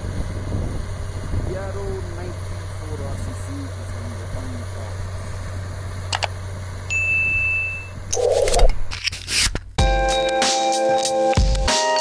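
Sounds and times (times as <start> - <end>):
snow blower engine droning: 0.0 - 7.1.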